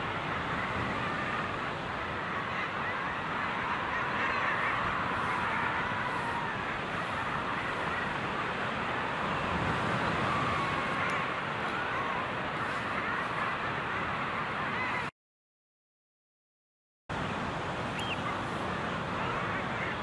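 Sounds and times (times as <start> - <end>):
seabird colony calling: 0.0 - 15.1, 17.8 - 20.0.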